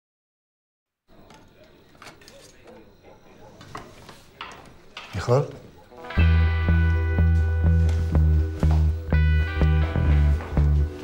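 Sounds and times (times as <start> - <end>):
faint voices murmuring: 1.1 - 6.2.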